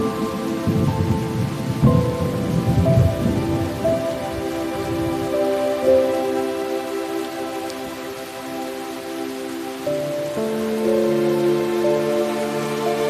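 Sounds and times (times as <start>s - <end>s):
rolling rumble of thunder: 0.0s - 5.6s
slow music with held notes: 0.0s - 13.0s
steady rain: 0.0s - 13.0s.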